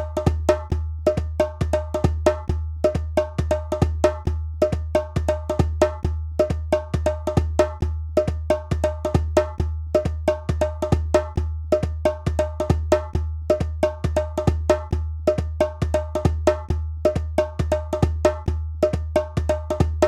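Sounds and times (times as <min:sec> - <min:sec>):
hand drum strikes: 0:00.0 - 0:20.0.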